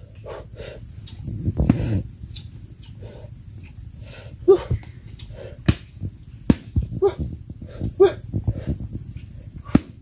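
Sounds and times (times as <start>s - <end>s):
log being struck: 5.6s - 6.8s, 9.7s - 10.0s.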